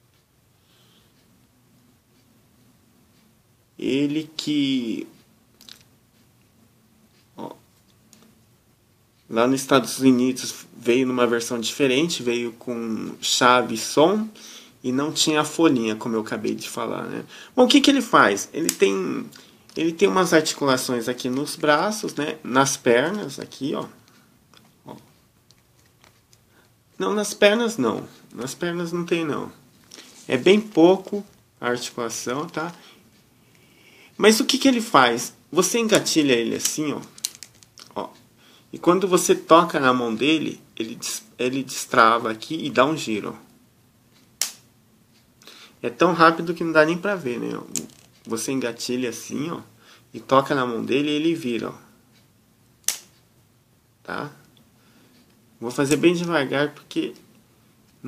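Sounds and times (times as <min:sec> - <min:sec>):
plastic toy clicks and rubbing: 0:36.5 - 0:38.0.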